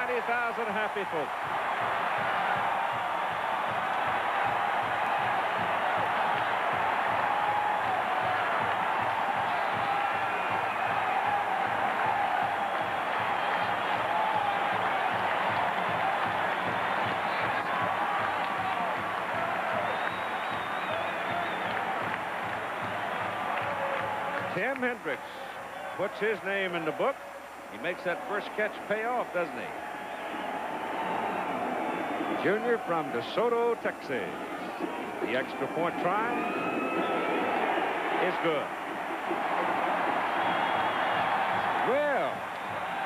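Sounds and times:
stadium crowd cheering: 0:00.0 - 0:43.0.

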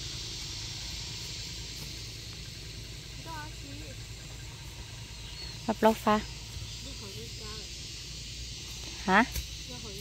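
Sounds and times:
high outdoor hiss: 0:00.0 - 0:10.0
women speaking: 0:05.5 - 0:07.8, 0:08.9 - 0:10.0.

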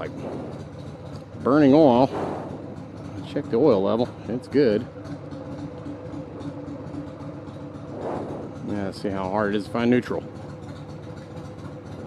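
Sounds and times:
motorcycle engine idling: 0:00.0 - 0:12.0.

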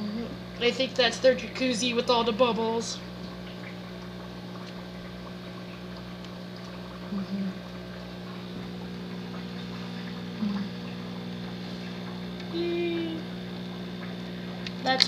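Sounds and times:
electric filter hum: 0:00.0 - 0:15.0
water bubbling and churning: 0:00.0 - 0:15.0
short low tones: 0:07.1 - 0:13.7.

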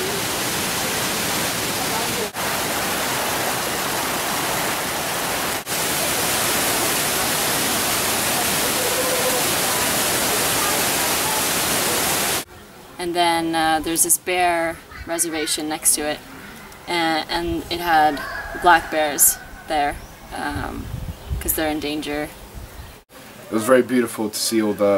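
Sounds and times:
waterfall rushing: 0:00.0 - 0:12.5.

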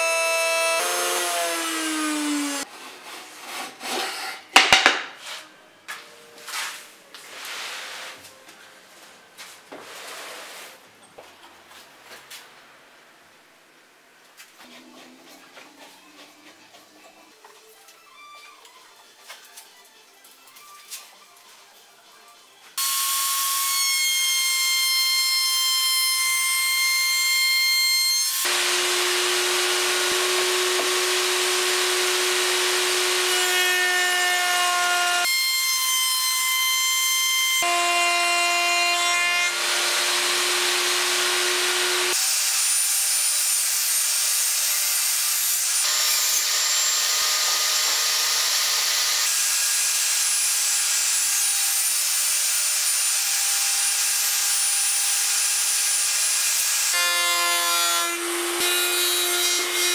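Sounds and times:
table saw cutting wood: 0:00.0 - 0:02.7, 0:22.8 - 0:59.9.

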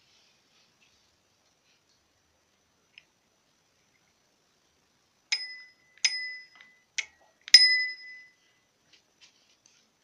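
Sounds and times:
bicycle bell dings: 0:05.3 - 0:06.8, 0:07.5 - 0:08.4.

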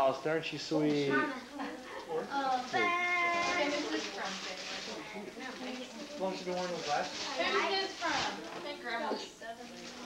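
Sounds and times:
people chattering: 0:00.7 - 0:10.0.

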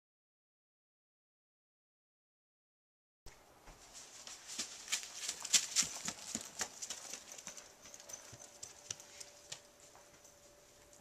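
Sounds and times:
footsteps on hard surface: 0:03.6 - 0:10.3.

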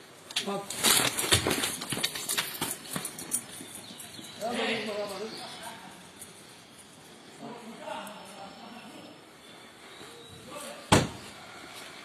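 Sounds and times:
footsteps on pavement: 0:01.1 - 0:05.6.

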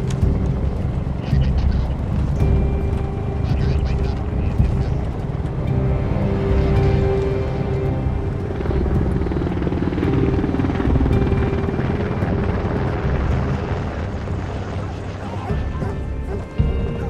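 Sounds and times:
helicopter rotor chopping: 0:00.0 - 0:17.0.

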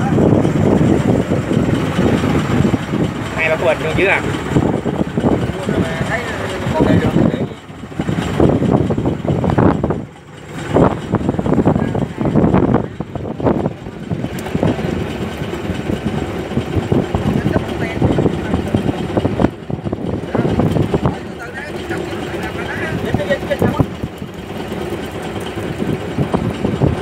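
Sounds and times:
boat engine running: 0:00.0 - 0:27.0.

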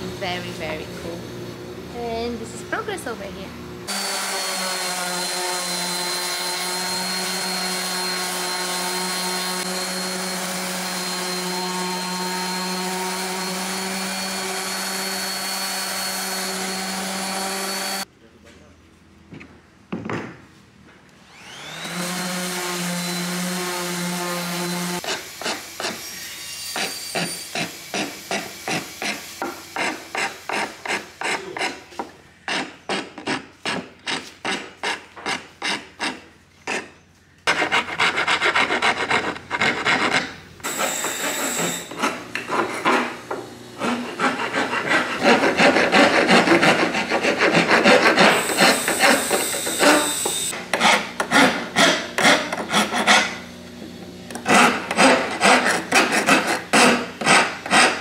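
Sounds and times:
electric palm sander: 0:03.9 - 0:18.1, 0:21.3 - 0:31.4, 0:40.6 - 0:51.5
hand file scraping wood: 0:24.2 - 0:53.4, 0:54.3 - 0:58.0.

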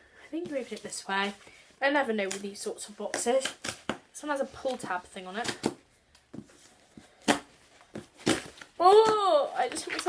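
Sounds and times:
cardboard crackling: 0:00.4 - 0:10.0.

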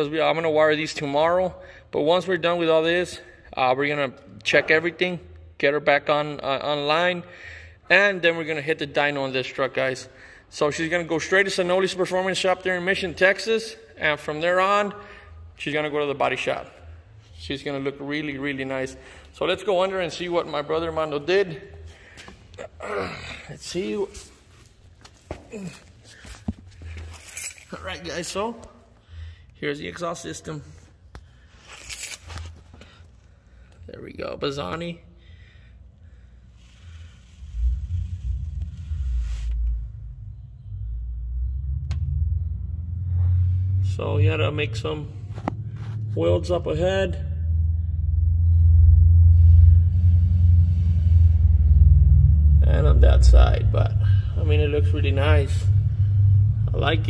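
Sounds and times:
low rumble: 0:35.4 - 0:57.0.

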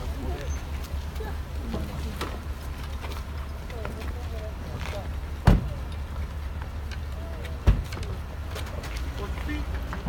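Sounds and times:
car doors slamming: 0:05.4 - 0:05.8.

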